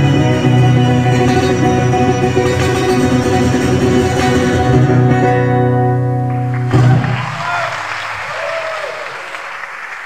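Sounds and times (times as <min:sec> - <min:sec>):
audience applauding: 0:06.1 - 0:10.0
person whooping: 0:06.8 - 0:09.3.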